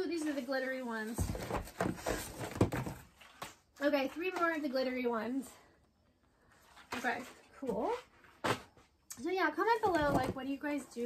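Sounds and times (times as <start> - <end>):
packaging rustling and clattering: 1.1 - 3.6.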